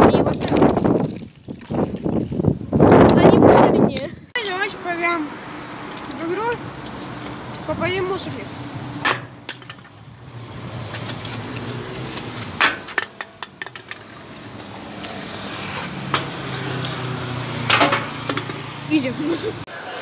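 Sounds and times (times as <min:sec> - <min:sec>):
street traffic hum: 0:00.0 - 0:20.0.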